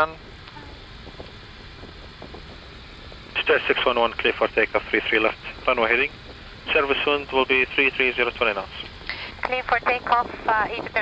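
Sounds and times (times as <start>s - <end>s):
aircraft engines idling hum: 0.0s - 11.0s.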